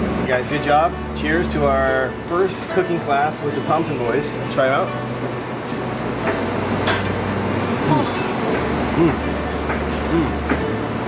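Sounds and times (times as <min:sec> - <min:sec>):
low hum of kitchen equipment: 0:00.0 - 0:11.0
people eating: 0:01.0 - 0:11.0
closed-mouth mm sounds: 0:08.9 - 0:09.4, 0:10.0 - 0:10.6.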